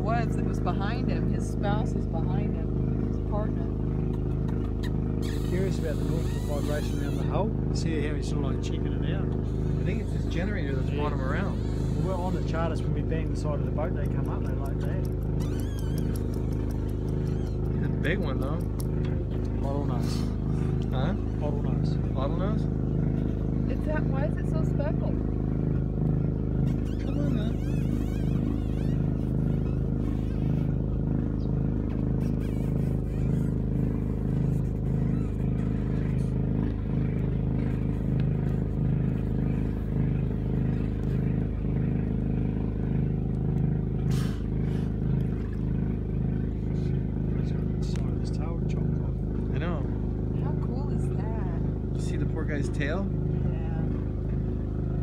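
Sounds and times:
generator humming: 0.0s - 55.0s.

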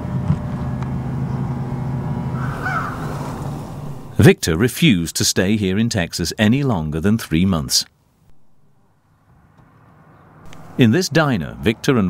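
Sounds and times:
low mechanical hum: 0.0s - 4.3s, 10.4s - 10.8s
bird call: 2.4s - 4.2s.

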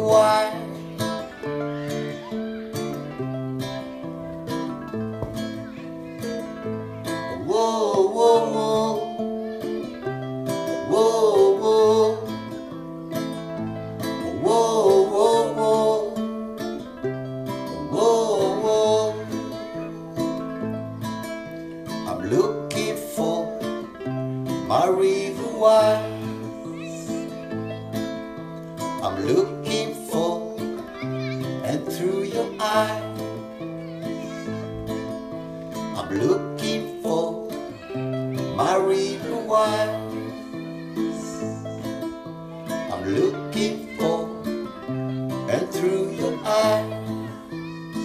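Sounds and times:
wordless singing voice: 0.0s - 1.4s, 7.1s - 9.8s, 10.6s - 12.6s, 14.0s - 16.4s, 17.6s - 19.9s, 22.0s - 27.4s, 28.8s - 33.6s, 35.8s - 41.8s, 42.7s - 48.0s
acoustic guitar strumming: 0.0s - 48.0s.

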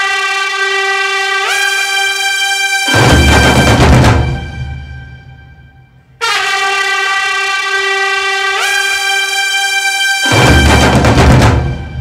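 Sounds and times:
brass-like music sting: 0.0s - 12.0s.

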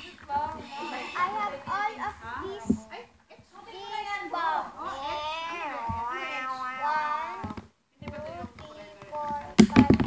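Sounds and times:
child vocalising sing-song: 3.8s - 7.6s, 8.4s - 10.0s.

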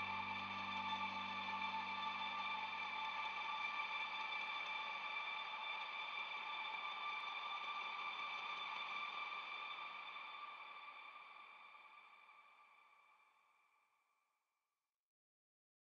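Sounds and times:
sustained ambient pad chord: 0.0s - 3.4s.

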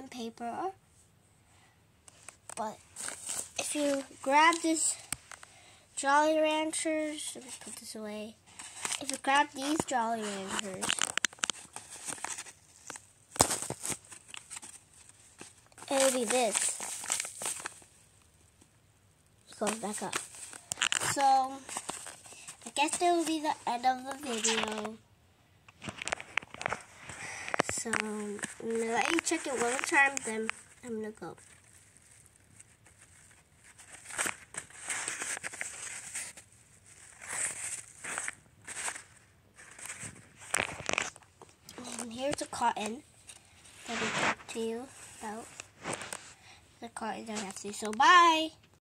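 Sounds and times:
paper crinkling and crackling: 2.1s - 5.6s, 8.5s - 18.1s, 19.4s - 25.0s, 25.7s - 48.4s.

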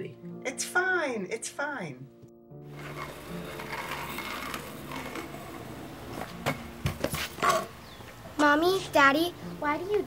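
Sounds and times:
scooter wheels rolling on asphalt: 2.6s - 9.1s.

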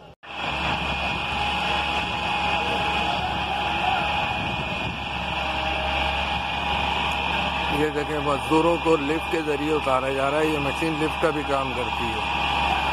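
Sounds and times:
excavator diesel engine running: 0.0s - 12.9s.

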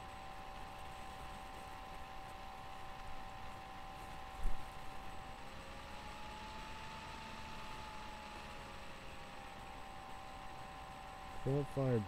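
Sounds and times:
background hiss and hum: 0.0s - 12.0s.

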